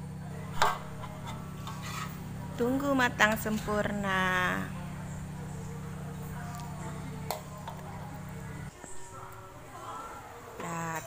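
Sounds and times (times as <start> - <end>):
metal spatula scraping wok: 0.8 - 2.3.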